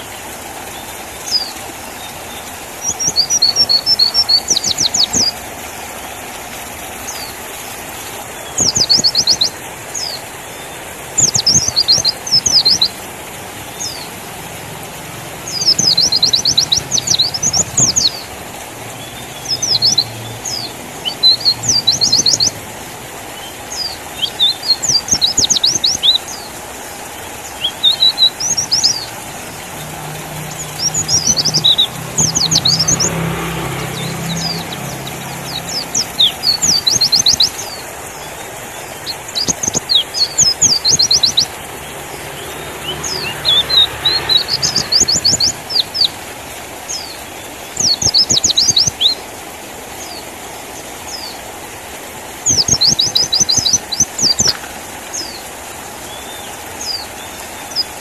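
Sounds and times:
bird rapid high chirping: 0:11.2 - 0:12.9, 0:15.4 - 0:18.3, 0:19.0 - 0:22.6, 0:27.5 - 0:41.6, 0:42.4 - 0:46.1, 0:47.7 - 0:49.2, 0:52.5 - 0:54.6.

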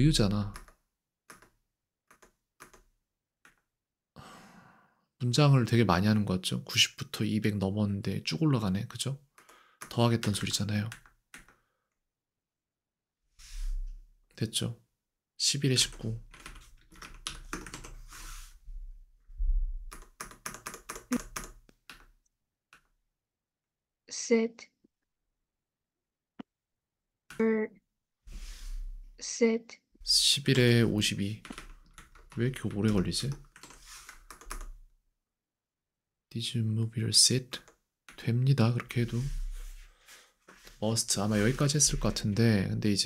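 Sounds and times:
person sighing: 0:04.2 - 0:05.0.

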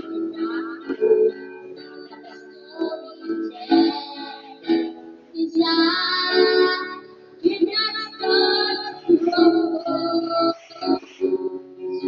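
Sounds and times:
backing track: 0:00.0 - 0:12.0.

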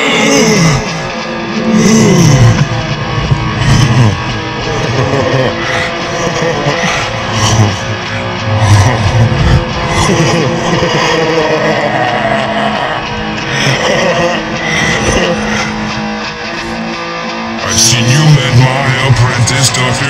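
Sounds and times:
rock band instrumental: 0:00.0 - 0:20.0.

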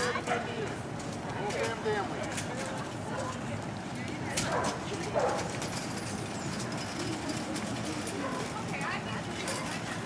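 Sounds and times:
murmur of outdoor crowd: 0:00.0 - 0:10.0.

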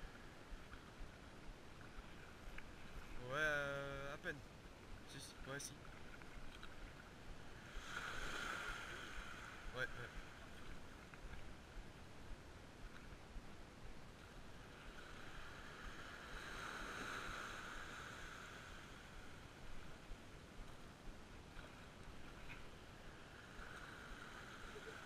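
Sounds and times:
small waves on sandy beach: 0:00.0 - 0:25.0.

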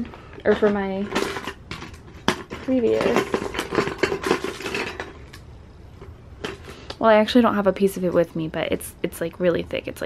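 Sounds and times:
rustling handling noise: 0:00.0 - 0:07.4.

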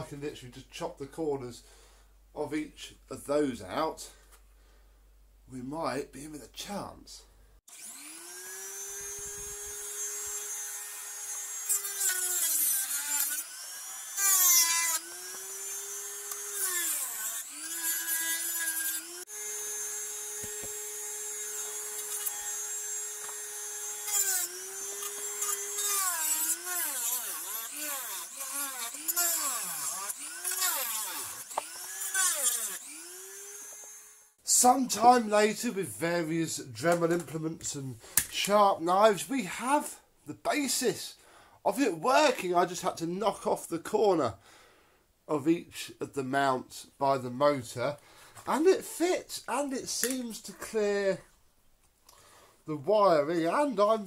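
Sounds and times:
rotary tool grinding plastic: 0:07.7 - 0:34.4.

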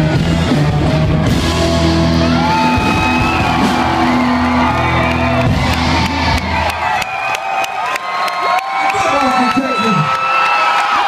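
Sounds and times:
rock band with electric guitar: 0:00.0 - 0:11.0
crowd cheering and whooping: 0:01.0 - 0:11.0.

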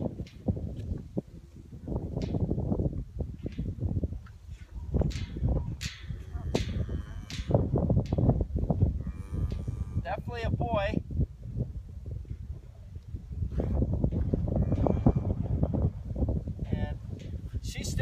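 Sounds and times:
wind rumbling on microphone: 0:00.0 - 0:18.0.

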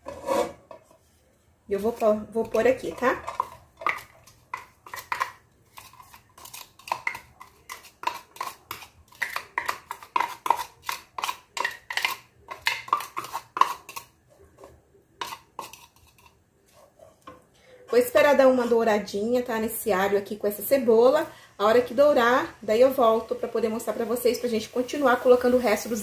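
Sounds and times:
wooden spoon scraping a bowl: 0:00.0 - 0:18.3.

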